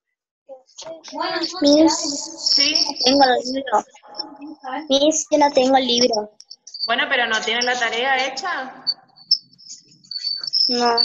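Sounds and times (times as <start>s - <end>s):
high-pitched chirping tone: 1.0s - 11.0s.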